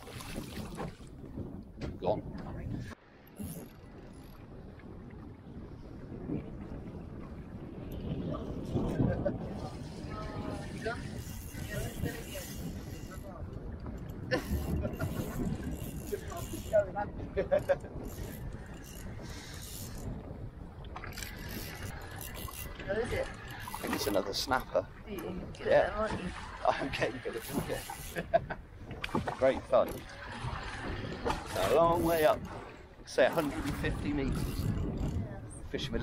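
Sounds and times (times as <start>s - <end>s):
choppy sea around boat: 0.0s - 36.0s
wind noise on microphone: 0.0s - 36.0s.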